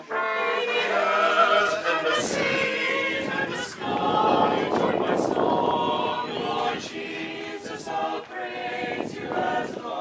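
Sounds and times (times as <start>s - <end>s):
mixed choir singing unaccompanied: 0.0s - 10.0s.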